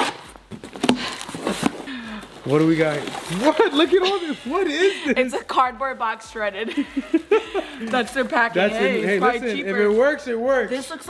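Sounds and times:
packing tape tearing: 0.0s - 4.0s.

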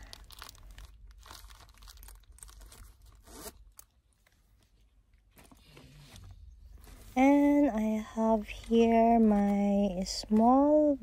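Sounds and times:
nylon pouch rustling and crinkling: 0.0s - 11.0s.

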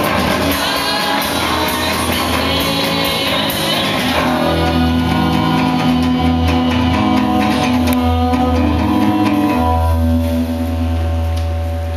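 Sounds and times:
strummed acoustic guitar: 0.0s - 11.2s
drum kit: 0.0s - 11.9s.

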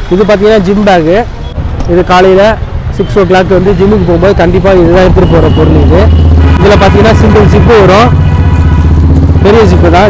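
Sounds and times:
vehicle engine droning: 1.4s - 10.0s
man speaking: 1.9s - 8.2s, 9.4s - 10.0s.

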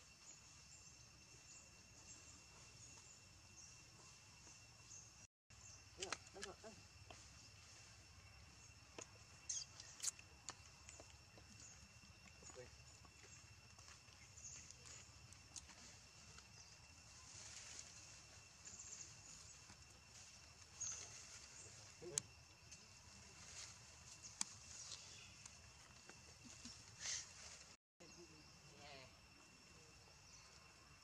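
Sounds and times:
high insect drone: 0.0s - 31.0s.

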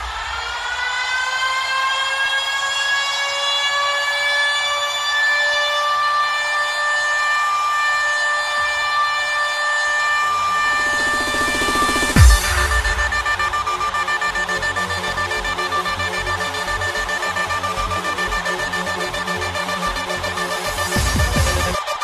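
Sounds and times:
long held synth note: 10.1s - 16.2s.

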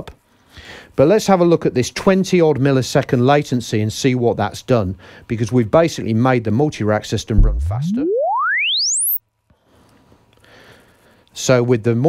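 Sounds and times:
low hum: 7.4s - 9.2s
rising sine sweep: 7.4s - 9.2s.

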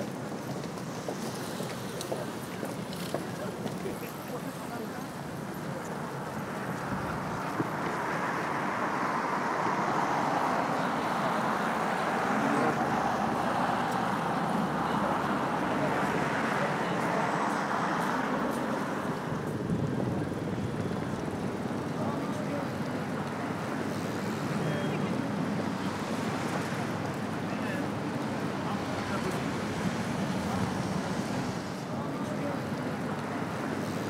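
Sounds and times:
chatter of passers-by: 0.0s - 34.0s
road traffic: 0.0s - 34.0s.

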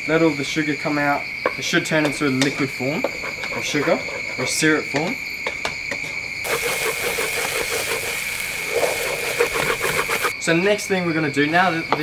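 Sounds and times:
wooden spatula scraping a pan: 3.0s - 4.6s, 6.5s - 10.3s
paste sizzling in a wok: 6.4s - 10.3s.

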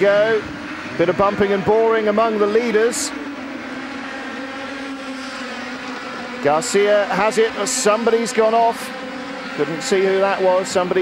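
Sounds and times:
racing kart engines droning: 0.0s - 11.0s.

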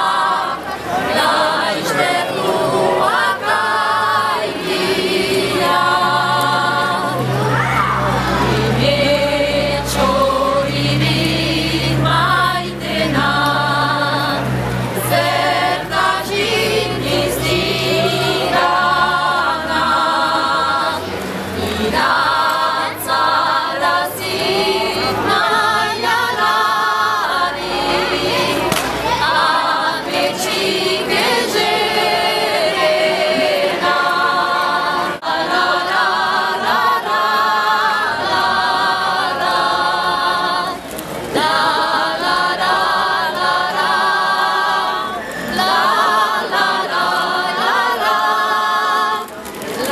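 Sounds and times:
women singing in harmony: 0.0s - 49.9s.

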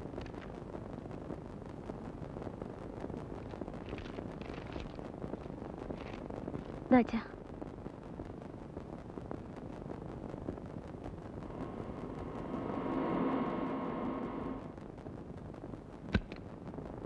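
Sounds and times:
steady low hiss: 0.0s - 17.0s.

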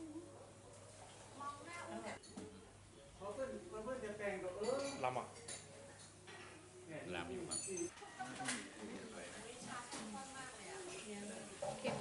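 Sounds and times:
tableware clinking: 2.2s - 2.7s, 4.6s - 6.7s, 7.4s - 8.0s.

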